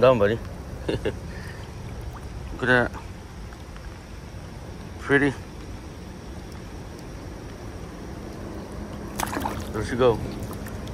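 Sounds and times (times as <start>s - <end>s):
rain on river surface: 0.0s - 10.9s.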